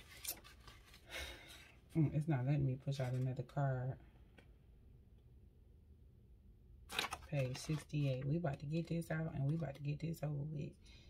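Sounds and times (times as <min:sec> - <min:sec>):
paper rustling: 0:00.0 - 0:02.0, 0:06.9 - 0:08.4.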